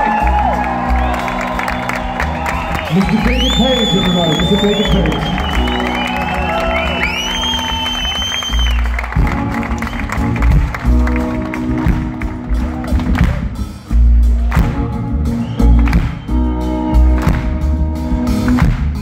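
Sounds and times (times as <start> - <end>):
live band music: 0.0 - 19.0
shrill whistle: 1.0 - 8.9.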